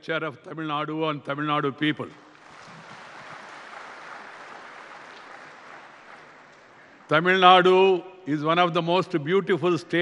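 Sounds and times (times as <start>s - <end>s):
audience applauding: 2.3s - 7.1s.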